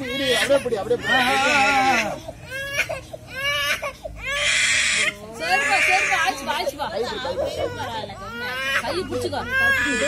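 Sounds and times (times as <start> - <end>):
small child crying: 0.0 - 10.0.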